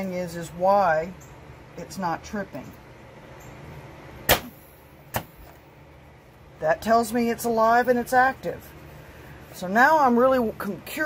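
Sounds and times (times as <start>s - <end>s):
rat trap pneumatic snap: 4.3s - 5.6s.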